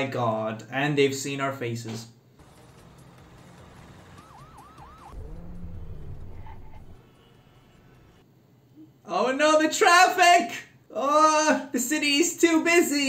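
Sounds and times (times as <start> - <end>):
traffic noise: 2.4 - 8.2
vehicle engine rumble: 2.4 - 8.2
police siren whoops: 3.7 - 8.2.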